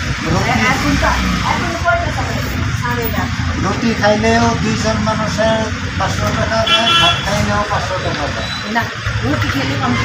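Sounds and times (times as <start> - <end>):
vehicle traffic rumble: 0.0 - 10.0
people talking: 0.2 - 10.0.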